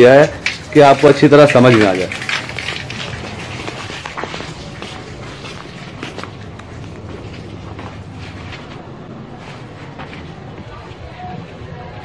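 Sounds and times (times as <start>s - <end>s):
water pump humming: 0.0s - 9.0s
footsteps on concrete stairs: 0.2s - 11.6s.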